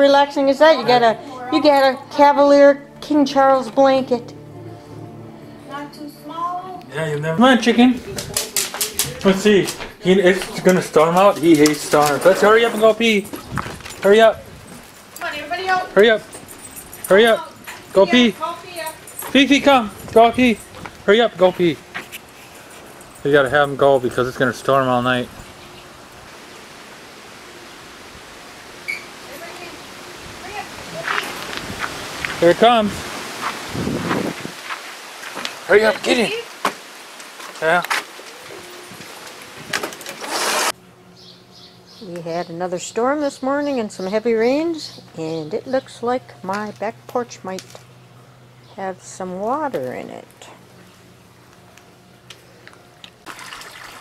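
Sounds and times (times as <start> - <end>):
outdoor rushing hiss: 19.4 - 41.7
low steady hum: 40.7 - 54.0
water splashing into a pond: 53.2 - 54.0.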